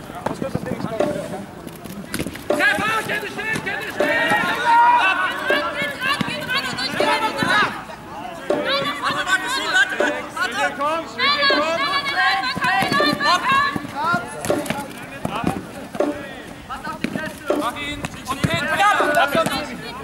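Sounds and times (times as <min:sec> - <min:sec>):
players calling and shouting: 0:00.0 - 0:20.0.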